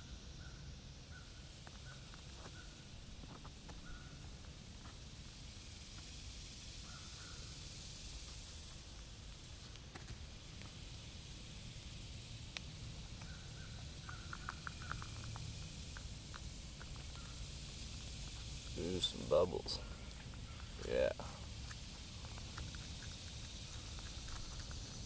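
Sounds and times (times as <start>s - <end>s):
low rumble and hiss: 0.0s - 25.0s.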